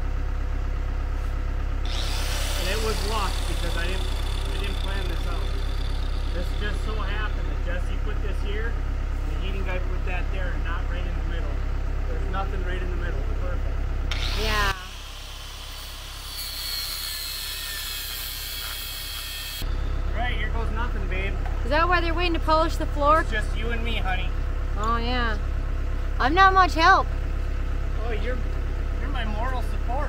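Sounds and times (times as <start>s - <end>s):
heavy equipment engine droning: 0.0s - 16.4s, 17.2s - 30.0s.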